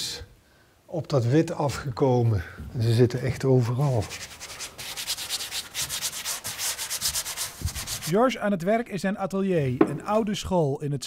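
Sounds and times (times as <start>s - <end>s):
rubbing strokes on painted surface: 3.5s - 8.3s.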